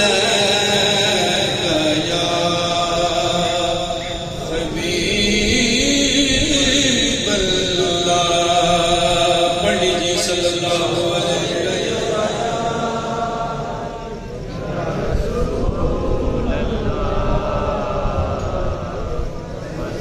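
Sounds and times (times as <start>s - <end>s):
man chanting into microphone: 0.0s - 20.0s.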